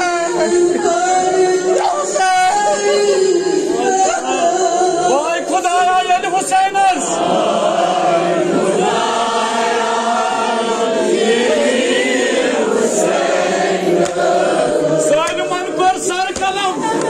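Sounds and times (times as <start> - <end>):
men chanting a lament in unison: 0.0 - 17.0.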